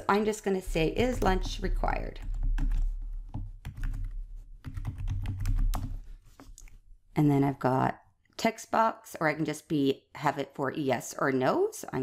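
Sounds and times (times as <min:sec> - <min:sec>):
computer keyboard typing: 0:00.7 - 0:06.0.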